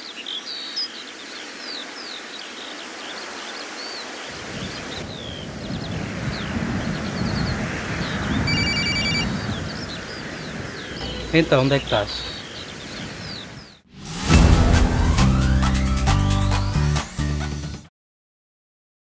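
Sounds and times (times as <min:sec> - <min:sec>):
small birds chirping: 0:00.0 - 0:13.9
mobile phone ringing: 0:08.5 - 0:09.3
low rumble: 0:11.0 - 0:12.6.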